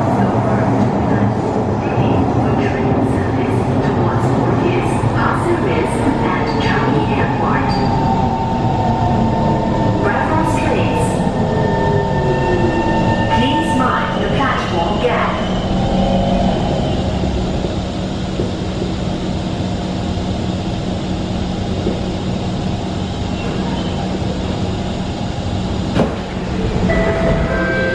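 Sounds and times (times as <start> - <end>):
rumbling train wheels: 0.0 - 27.9
steady train hum: 0.0 - 27.9
train doors knock: 25.9 - 26.4.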